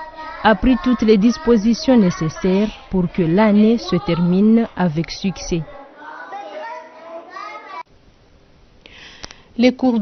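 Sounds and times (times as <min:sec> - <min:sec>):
children talking and calling out: 0:00.0 - 0:07.9.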